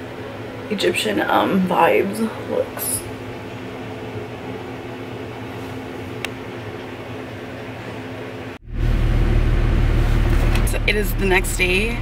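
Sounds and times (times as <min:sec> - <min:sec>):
low electrical hum: 0:00.0 - 0:12.0
car interior rumble: 0:08.6 - 0:12.0.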